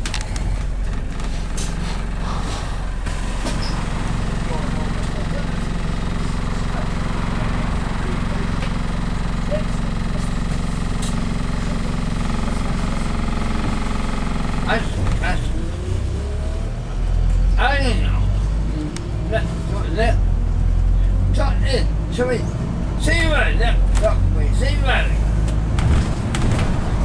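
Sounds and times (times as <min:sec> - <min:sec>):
bus engine and road noise: 0:00.0 - 0:27.0.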